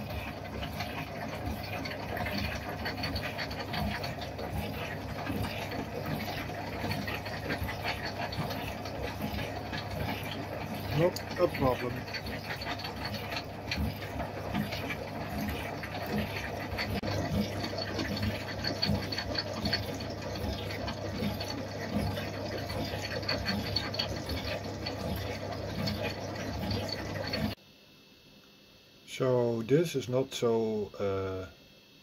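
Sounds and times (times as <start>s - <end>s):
steady motor hum: 0.0s - 27.6s.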